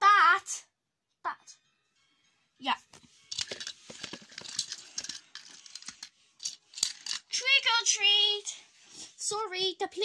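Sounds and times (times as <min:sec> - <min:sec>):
toy trains clicking and rattling: 0:03.3 - 0:07.6.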